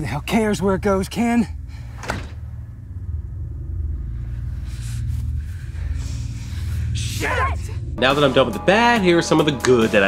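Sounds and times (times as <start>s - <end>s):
low ominous rumble: 0.0s - 9.4s.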